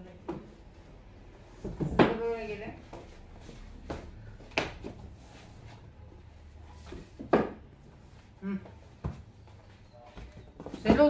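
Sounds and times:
books knocking on shelf: 1.6 - 2.3, 7.2 - 7.6, 10.6 - 11.0.

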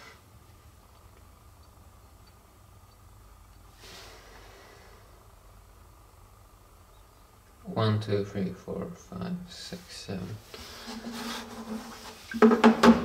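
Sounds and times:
faint hum: 0.0 - 12.4.

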